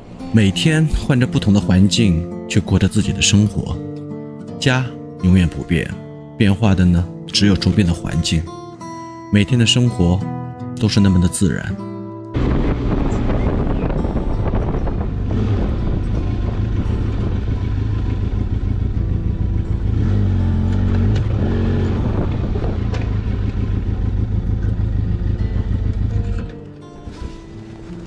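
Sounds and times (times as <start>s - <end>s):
road noise: 0.0s - 2.2s, 12.3s - 28.0s
motorcycle engine running: 12.4s - 28.0s.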